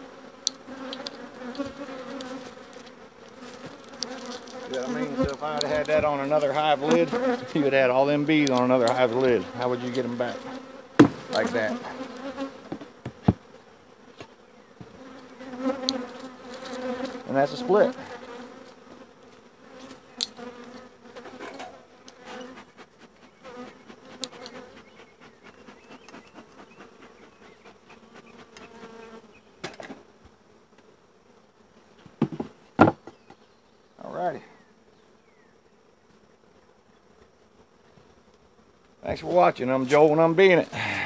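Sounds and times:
bee flying past: 0.0s - 41.0s
bees buzzing: 0.0s - 41.0s
sharp knocks: 11.0s - 11.3s, 32.2s - 33.2s.

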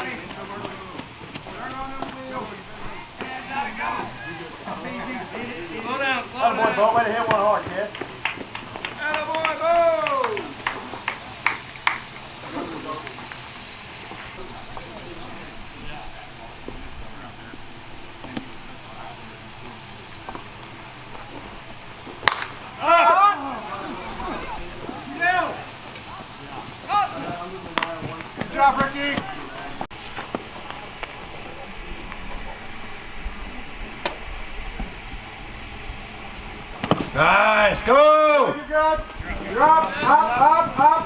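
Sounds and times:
people shouting calls: 0.0s - 29.9s, 37.1s - 41.0s
open-air hiss: 0.0s - 41.0s
sharp crack: 22.2s - 22.7s.

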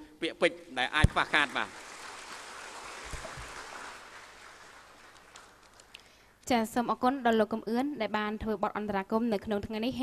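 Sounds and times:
audience applause: 1.0s - 6.0s.

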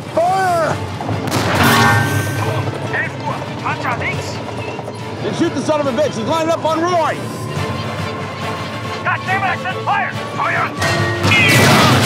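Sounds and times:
film music: 0.0s - 12.0s
tank gun blast: 1.1s - 2.4s, 10.8s - 12.0s.

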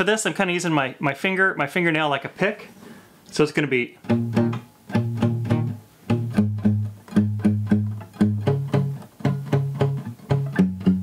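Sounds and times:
classical guitar bass notes: 4.0s - 11.0s.

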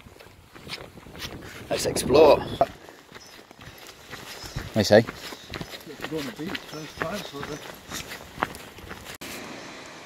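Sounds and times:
footsteps on tarmac: 0.0s - 1.6s, 2.6s - 9.2s
person talking indistinctly: 4.6s - 8.1s.

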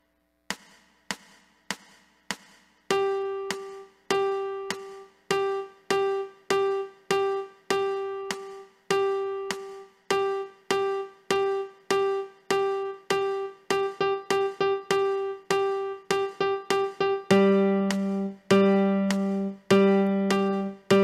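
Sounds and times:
piano note repeated: 2.9s - 21.0s.

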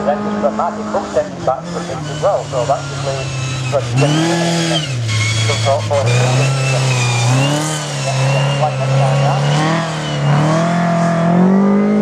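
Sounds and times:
commentary: 0.0s - 10.6s
race car engine running hard: 0.0s - 12.0s.

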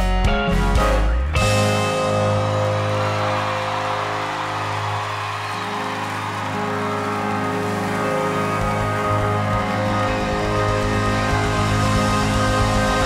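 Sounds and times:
audience cheering and applauding: 1.5s - 13.0s
band holding a sustained chord: 1.8s - 13.0s.

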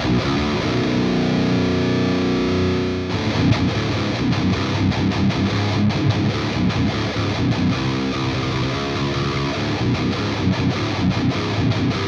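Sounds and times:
distorted electric guitar riffs: 0.0s - 12.0s.

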